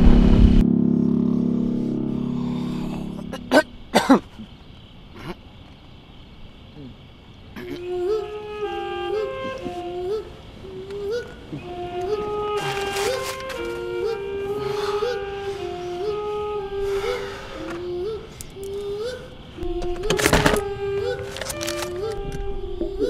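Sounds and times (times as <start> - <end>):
higher harmony line: 0.6 - 4.4, 7.6 - 18.4
slow flute-like melody: 7.7 - 23.0.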